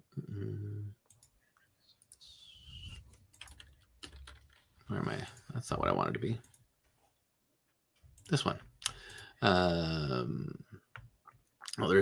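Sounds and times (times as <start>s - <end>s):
falling whistle-like tone: 2.2s - 3.1s.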